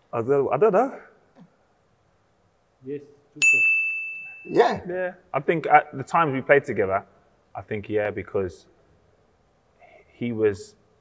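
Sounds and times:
bell-like ding: 3.4s - 4.7s.

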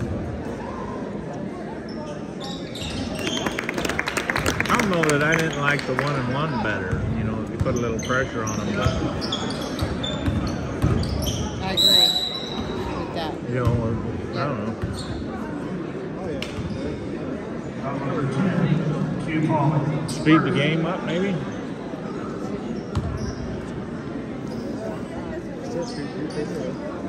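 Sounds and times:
crowd murmur: 0.0s - 27.0s
sneakers squeaking on court: 1.8s - 3.5s, 6.9s - 13.8s, 14.6s - 15.5s, 16.4s - 17.2s, 22.6s - 26.8s
basketball bouncing on gym floor: 9.8s - 11.2s, 13.6s - 13.8s, 22.9s - 23.2s.

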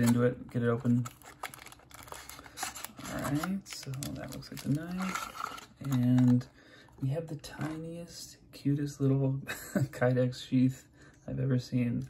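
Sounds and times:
plastic wrapping crinkling: 0.0s - 6.5s.

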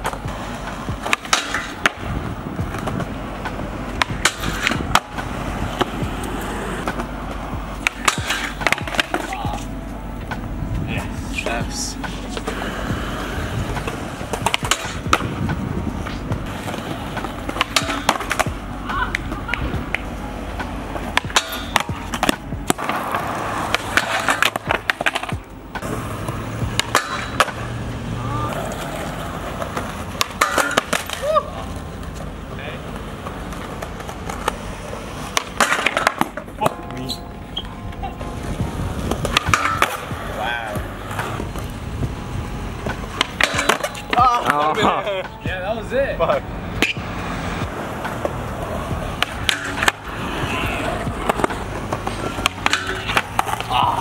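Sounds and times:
skateboard clacking on steel rail: 0.0s - 2.1s, 2.7s - 9.7s, 13.7s - 15.6s, 16.5s - 26.0s, 26.7s - 27.7s, 28.5s - 32.3s, 35.2s - 37.0s, 39.0s - 41.7s, 42.8s - 45.4s, 47.6s - 54.0s
skateboard wheels rolling on concrete: 0.0s - 54.0s.

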